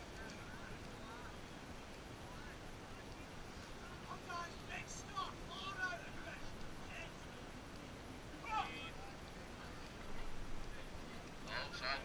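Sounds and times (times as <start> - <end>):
wind and water hiss: 0.0 - 12.0.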